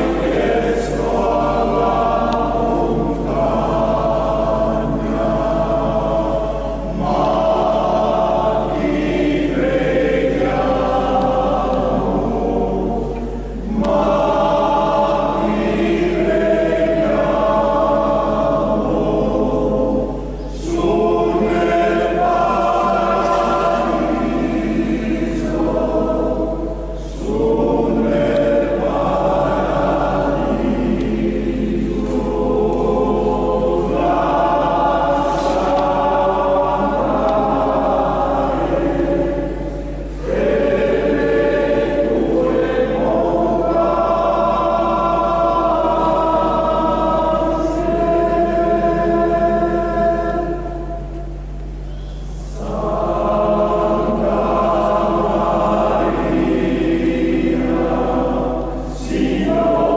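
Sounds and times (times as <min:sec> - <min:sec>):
male choir singing unaccompanied: 0:00.0 - 0:59.9.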